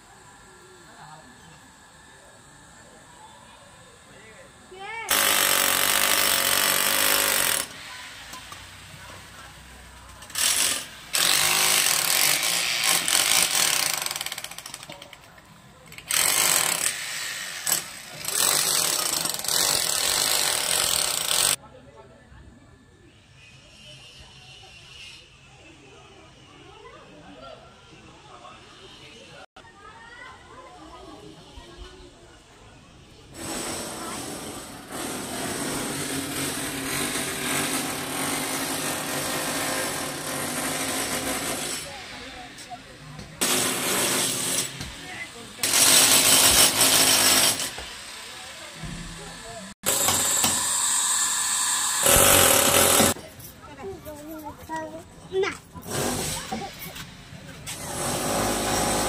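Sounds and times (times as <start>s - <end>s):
small machine droning: 0.0s - 14.6s
power tool hammering rattle: 5.1s - 9.0s, 10.1s - 15.3s, 15.9s - 21.6s, 33.4s - 42.6s, 43.2s - 53.2s, 57.7s - 59.0s.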